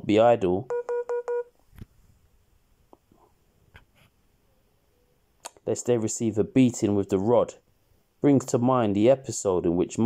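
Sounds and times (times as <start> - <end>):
short electronic beeps: 0.7 - 1.5.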